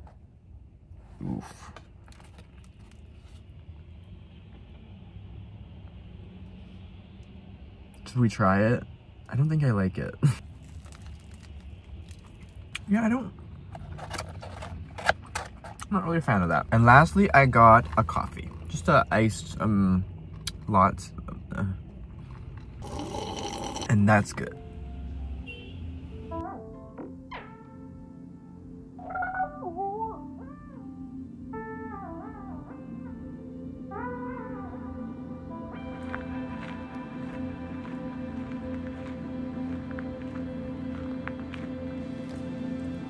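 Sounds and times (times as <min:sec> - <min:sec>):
low hum inside car cabin: 0:00.0 - 0:43.0.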